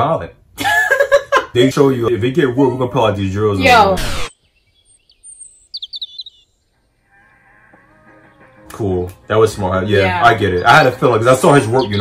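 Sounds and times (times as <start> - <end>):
high bird chirps: 3.9 - 8.6, 10.6 - 12.0.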